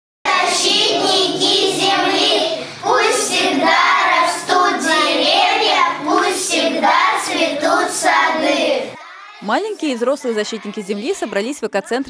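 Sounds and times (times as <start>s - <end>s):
children singing in unison: 0.3s - 9.4s.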